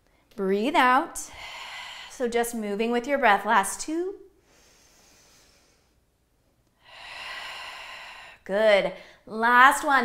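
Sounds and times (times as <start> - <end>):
woman breathing out: 1.3 - 2.2, 6.8 - 9.2.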